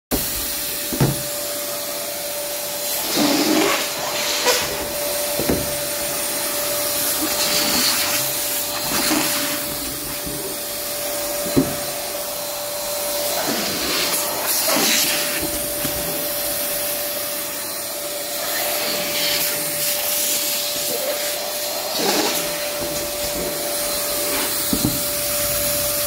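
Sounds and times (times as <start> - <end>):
balloon pump motor humming: 0.1 - 1.9.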